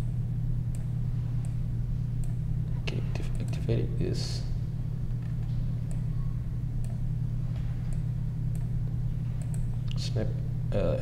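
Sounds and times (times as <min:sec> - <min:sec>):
steady low hum: 0:00.0 - 0:11.0
computer mouse clicks: 0:07.9 - 0:08.7, 0:09.4 - 0:10.0.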